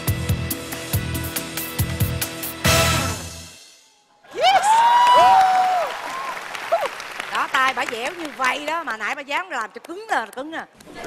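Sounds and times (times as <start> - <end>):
long high shouts: 4.3 - 6.4
studio applause: 4.3 - 9.2.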